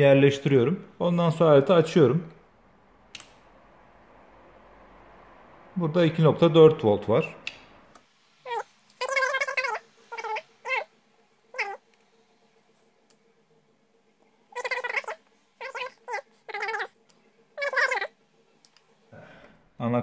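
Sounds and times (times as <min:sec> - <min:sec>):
cat meowing: 0:08.5 - 0:10.9, 0:11.5 - 0:11.8, 0:14.5 - 0:17.0, 0:17.6 - 0:18.1.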